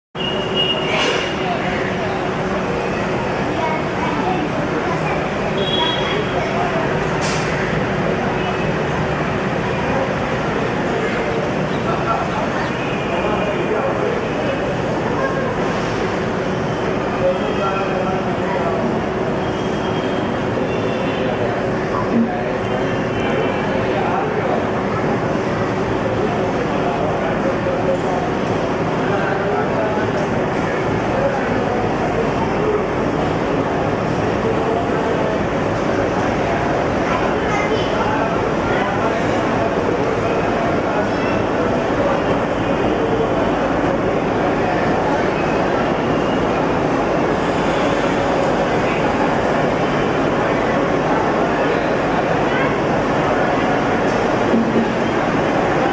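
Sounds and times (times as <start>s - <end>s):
background voices chatter: 0.2s - 55.9s
diesel locomotive engine running: 0.2s - 55.9s.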